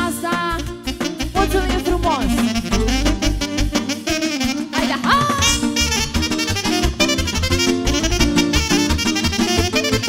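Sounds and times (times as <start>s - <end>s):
band with steady bass beat: 0.0s - 4.0s, 4.9s - 10.0s
saxophone playing quick melody: 0.0s - 10.0s.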